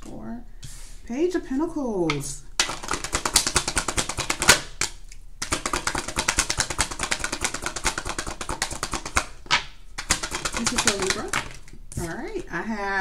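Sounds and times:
cards being shuffled: 0:02.1 - 0:12.5.

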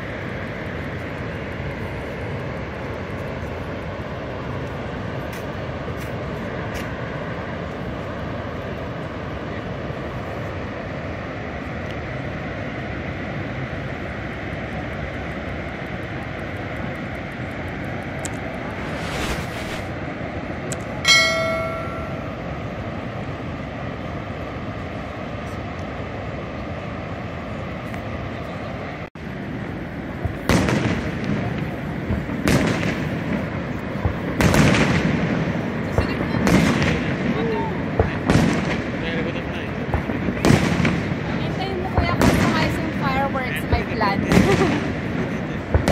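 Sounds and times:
fireworks bangs: 0:18.6 - 0:19.9, 0:30.2 - 0:39.0, 0:39.9 - 0:45.9
short high tone: 0:21.1 - 0:22.5.

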